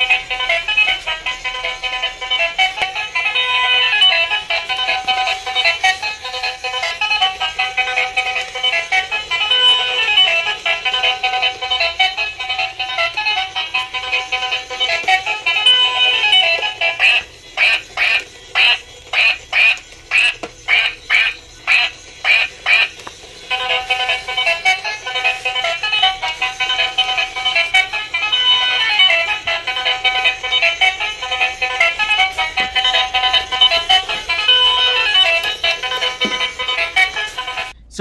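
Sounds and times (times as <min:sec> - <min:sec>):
toy playing electronic tune: 0:00.0 - 0:37.8.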